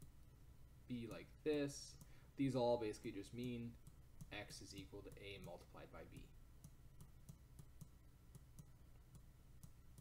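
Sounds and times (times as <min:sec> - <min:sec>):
stylus tapping a tablet: 0:00.0 - 0:00.2, 0:03.3 - 0:10.0.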